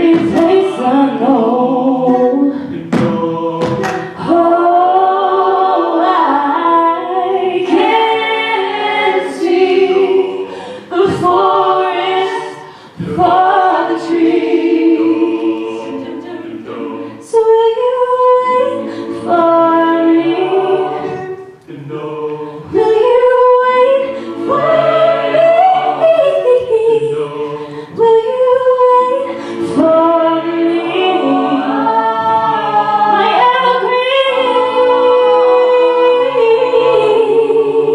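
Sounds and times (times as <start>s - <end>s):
a cappella group singing: 0.0s - 37.9s.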